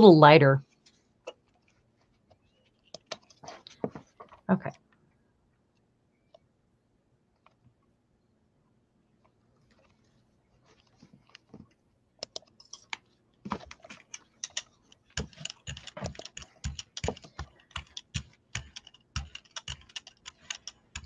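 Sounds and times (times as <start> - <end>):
brayer rolling sticky paint: 0.7 - 4.5, 9.6 - 21.0.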